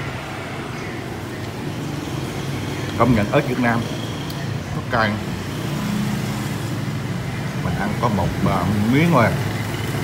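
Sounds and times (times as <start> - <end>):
low hum of street traffic: 0.0 - 10.0.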